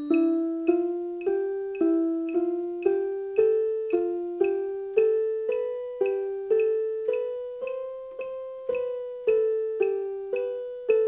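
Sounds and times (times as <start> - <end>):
electronic keyboard piano melody: 0.0 - 11.0.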